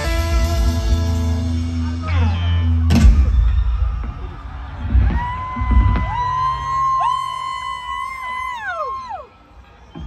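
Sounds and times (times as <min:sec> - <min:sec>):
electric guitar high notes bending: 0:00.0 - 0:03.0.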